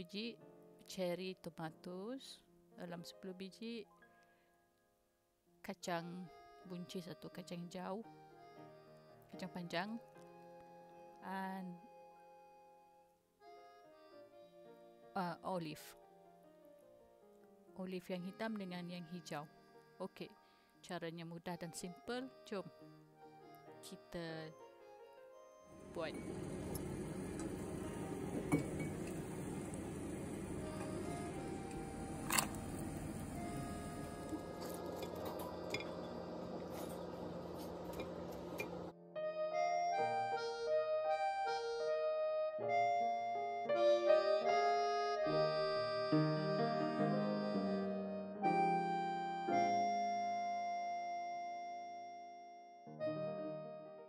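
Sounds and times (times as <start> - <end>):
keyboard music with piano melody: 5.9 - 20.7, 21.4 - 54.0
kitchen room noise: 25.8 - 38.9.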